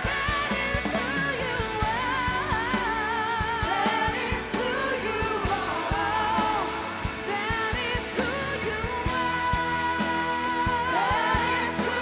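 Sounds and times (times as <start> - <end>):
electric guitar: 0.0 - 12.0
keyboard: 0.0 - 12.0
women singing: 0.0 - 12.0.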